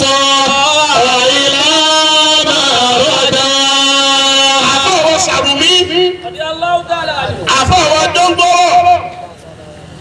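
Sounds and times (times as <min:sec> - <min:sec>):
man chanting over loudspeaker: 0:00.0 - 0:09.4.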